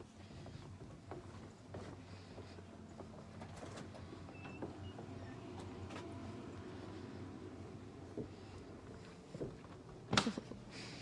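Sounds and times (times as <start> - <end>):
footsteps on wooden boardwalk: 0.0 - 11.0.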